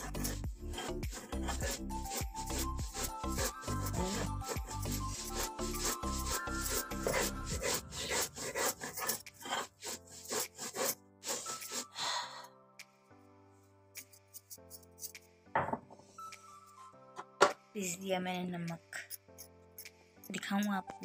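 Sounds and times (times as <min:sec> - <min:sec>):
stone muller scraping on stone slab: 0:00.0 - 0:11.9.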